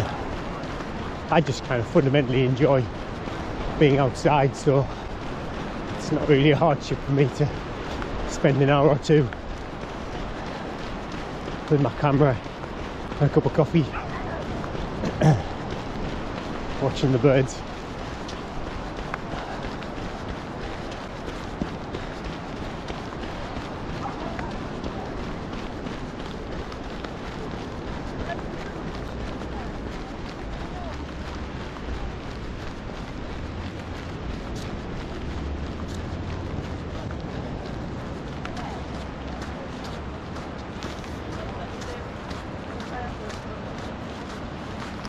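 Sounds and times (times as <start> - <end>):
footsteps on sand: 0.0 - 45.0
wind and surf rushing: 0.0 - 45.0
wind rumble on microphone: 0.0 - 45.0.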